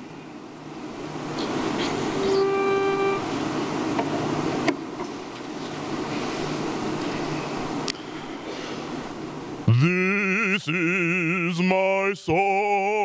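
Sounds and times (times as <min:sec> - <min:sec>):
steady held musical note: 0:01.2 - 0:03.7.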